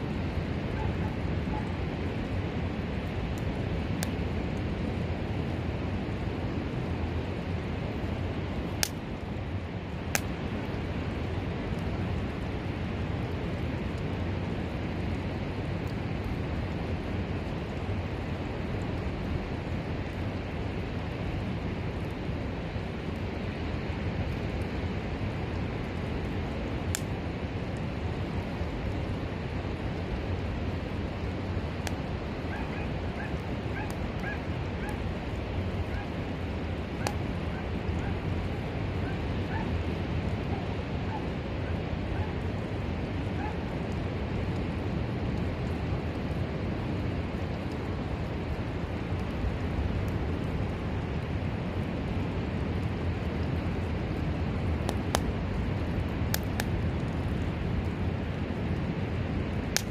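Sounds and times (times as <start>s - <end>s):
wind: 0.0s - 59.9s.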